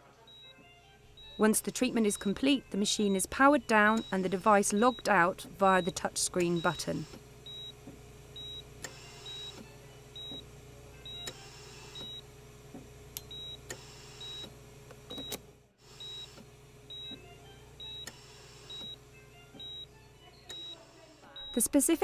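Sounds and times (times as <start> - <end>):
patient monitor pulse beeps: 0.2 - 0.6, 1.2 - 7.8, 8.4 - 9.6, 10.2 - 12.3, 13.2 - 14.5, 16.0 - 17.2, 17.8 - 19.0, 19.6 - 19.9, 20.5 - 20.8, 21.4 - 21.8.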